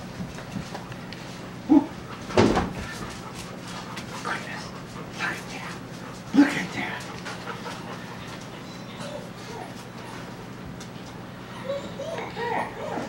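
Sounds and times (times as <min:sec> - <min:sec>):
puppy making short vocal sounds: 0:01.7 - 0:02.0.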